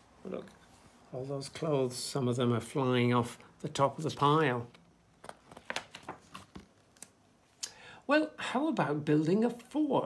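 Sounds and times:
book page turning: 5.2 - 7.2.

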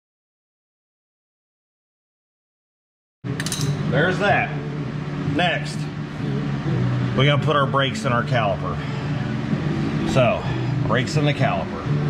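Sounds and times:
steady low hum: 3.3 - 12.0.

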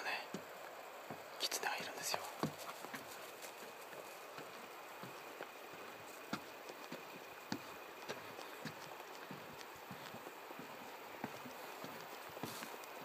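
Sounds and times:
person whispering: 0.0 - 0.4, 1.4 - 2.5.

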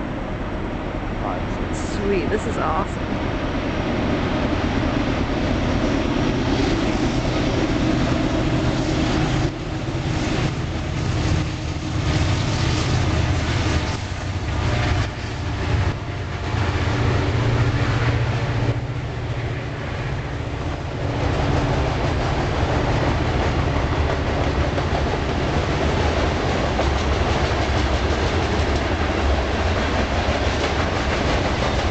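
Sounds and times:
train rumbling past: 0.0 - 31.9
wheels clacking on rail joints: 20.6 - 31.9.

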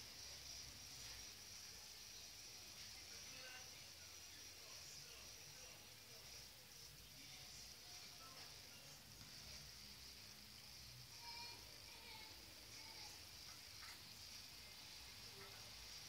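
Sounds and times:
high-pitched hiss: 0.0 - 16.0.

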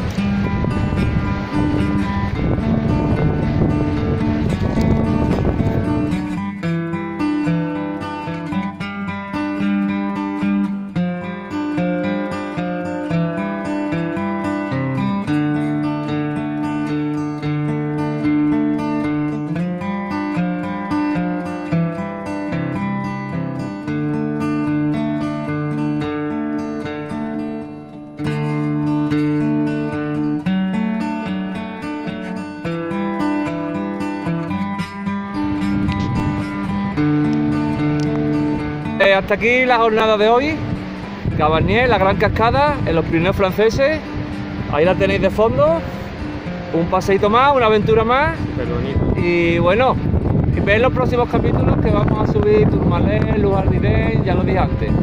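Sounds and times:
acoustic guitar music: 0.0 - 55.0.

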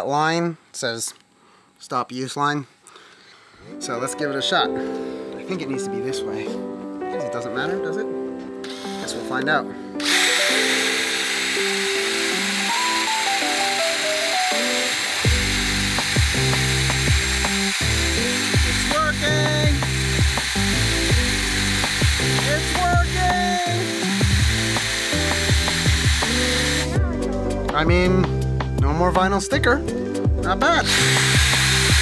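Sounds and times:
cordless drill whining: 8.6 - 9.1, 10.0 - 27.0, 30.8 - 32.0
background music with bass line: 15.3 - 32.0.

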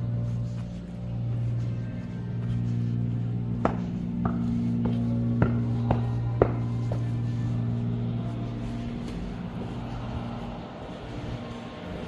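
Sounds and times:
low mechanical hum and rumble: 0.0 - 12.0.

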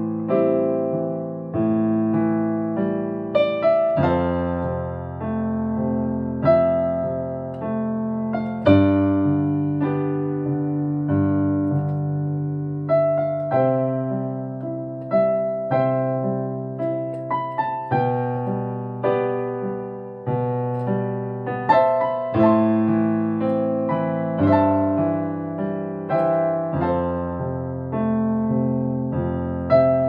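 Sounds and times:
electronic keyboard piano chords: 0.0 - 30.0.

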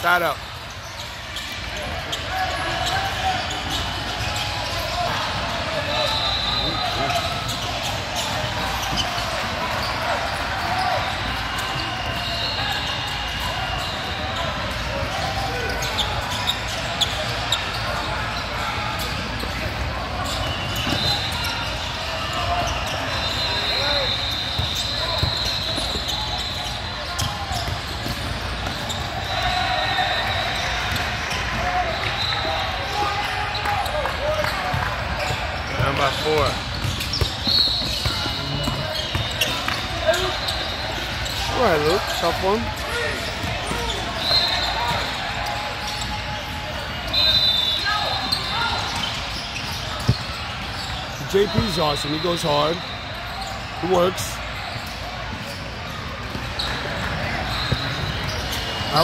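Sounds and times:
sneaker squeaks: 0.0 - 59.0
voices in a hall: 0.0 - 59.0
basketball bouncing on court: 34.3 - 40.7, 48.3 - 51.7.

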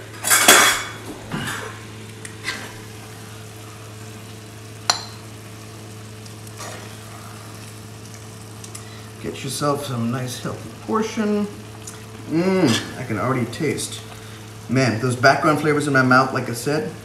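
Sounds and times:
curry sizzling: 0.0 - 17.0.

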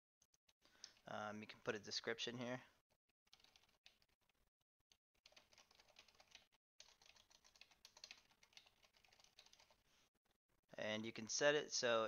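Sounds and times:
keyboard typing: 3.3 - 4.4, 5.2 - 9.8.

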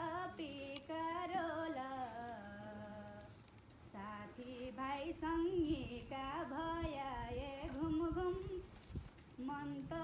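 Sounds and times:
woman singing unaccompanied: 0.0 - 8.8, 9.4 - 10.0.

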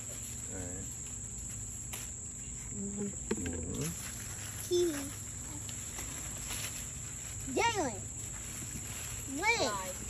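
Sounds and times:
insects droning: 0.0 - 10.0.

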